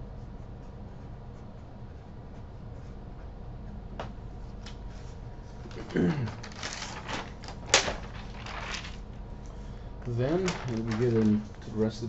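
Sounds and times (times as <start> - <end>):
paper rustling: 4.9 - 9.1, 10.1 - 12.0.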